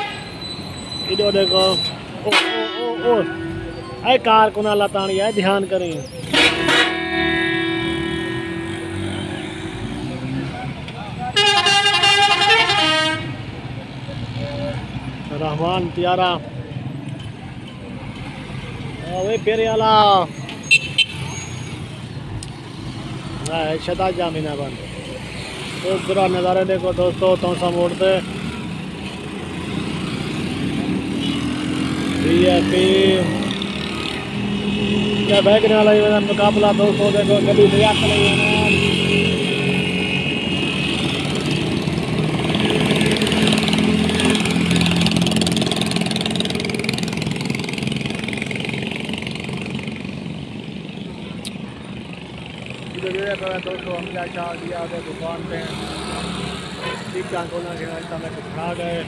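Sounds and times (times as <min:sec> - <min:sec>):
bus horn blasts: 0:00.0 - 0:00.4, 0:02.2 - 0:03.8, 0:06.2 - 0:09.2, 0:11.4 - 0:13.4, 0:56.8 - 0:57.2
traffic engine rumble: 0:00.0 - 0:59.0.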